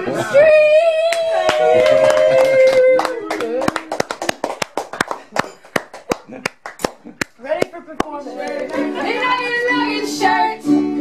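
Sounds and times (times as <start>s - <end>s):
people clapping in rhythm: 1.0s - 9.4s.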